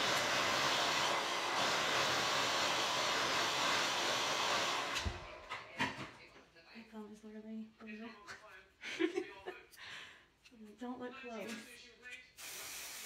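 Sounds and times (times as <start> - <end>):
hair dryer blowing: 0.0 - 5.3.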